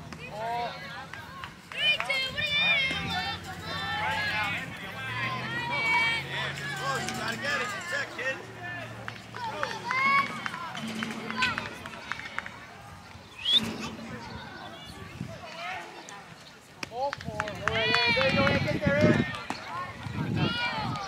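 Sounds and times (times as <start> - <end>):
voices calling and shouting: 0.0 - 21.0.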